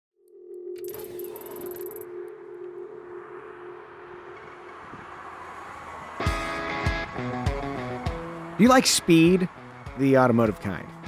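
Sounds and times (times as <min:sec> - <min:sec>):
synth drone: 0:00.2 - 0:06.7.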